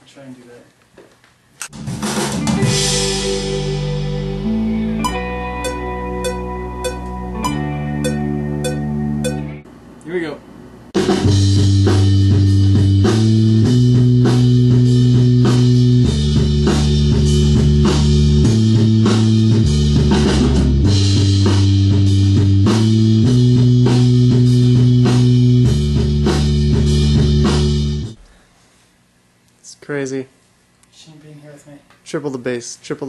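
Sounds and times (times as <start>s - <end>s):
steady drum beat: 1.7s - 4.2s, 5.0s - 9.5s, 11.0s - 28.4s
bass line: 1.7s - 9.6s, 11.0s - 28.4s
rock band playing: 1.7s - 9.6s, 11.0s - 28.2s
guitar: 1.7s - 9.7s, 11.0s - 28.3s
sustained keyboard chords: 1.7s - 9.7s, 11.0s - 28.2s.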